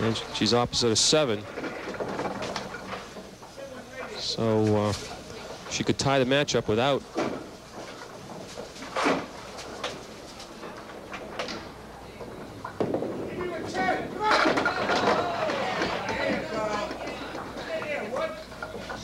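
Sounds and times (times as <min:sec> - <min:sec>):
bowling ball crashing into pins: 0:12.4 - 0:17.7
crowd voices reacting: 0:13.3 - 0:18.6.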